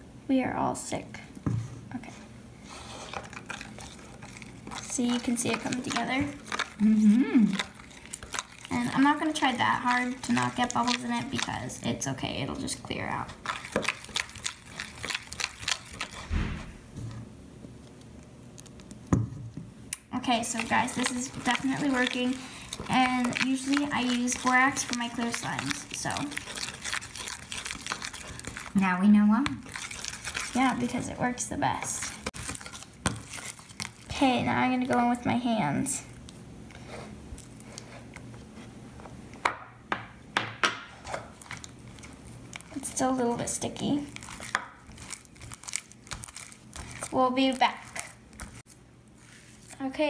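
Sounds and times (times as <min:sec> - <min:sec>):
spoon stirring slime in plastic bowl: 0:02.9 - 0:06.9, 0:07.5 - 0:16.2, 0:20.2 - 0:35.5, 0:40.9 - 0:50.0
dull thump: 0:16.3 - 0:17.1.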